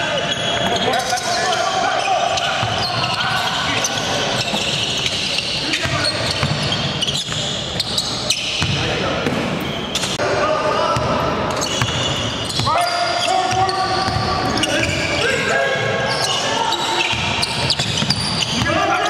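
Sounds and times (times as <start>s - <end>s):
shouts and chatter of people: 0.0s - 6.4s, 10.0s - 19.0s.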